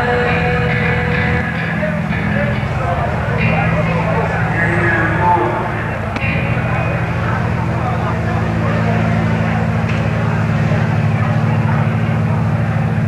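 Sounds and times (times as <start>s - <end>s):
crowd noise: 0.0s - 13.0s
rock band guitars and bass drone: 0.0s - 13.0s.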